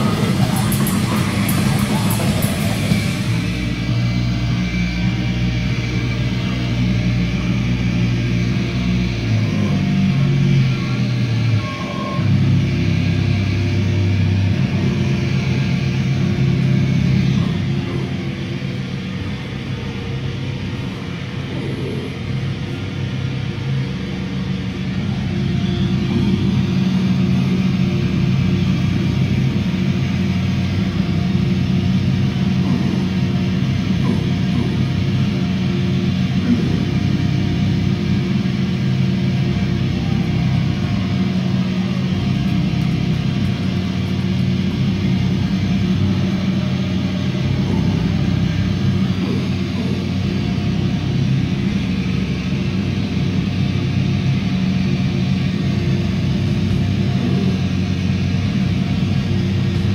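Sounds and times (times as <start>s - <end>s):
heavy band playing live: 0.0s - 3.8s
bass low notes: 0.0s - 59.9s
distorted guitar: 0.0s - 59.9s.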